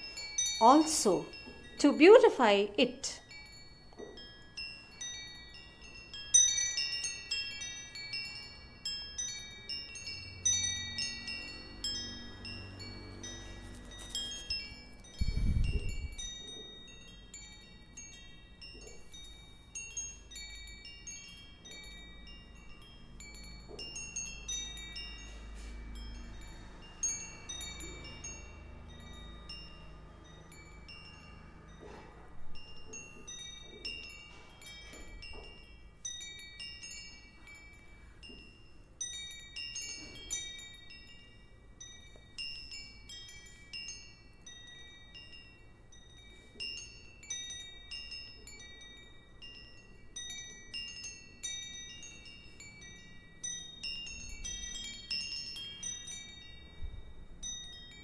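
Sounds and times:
wind chimes tinkling: 0:00.0 - 0:58.0.

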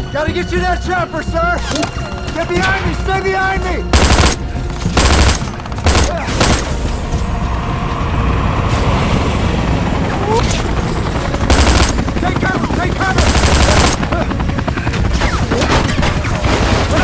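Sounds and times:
rushing battle noise: 0:01.6 - 0:17.0
rifle gunfire bursts: 0:03.9 - 0:06.8, 0:11.5 - 0:12.1, 0:13.1 - 0:14.1.

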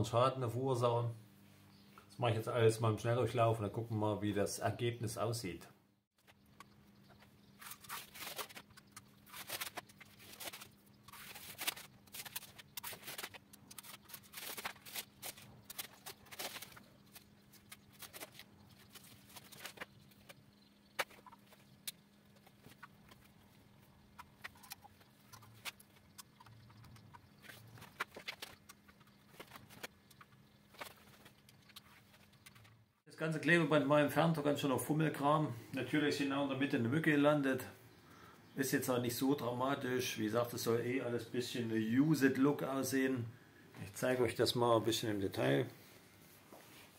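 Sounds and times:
low steady hum: 0:00.0 - 0:46.9
masking tape peeling: 0:07.6 - 0:19.9.

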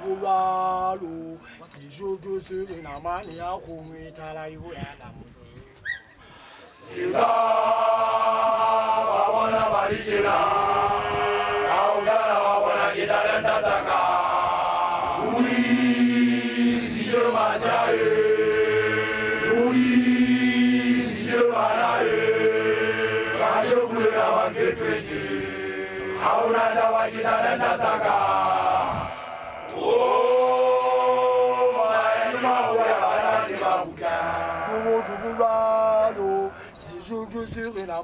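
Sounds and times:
group chanting a song: 0:06.8 - 0:36.8.

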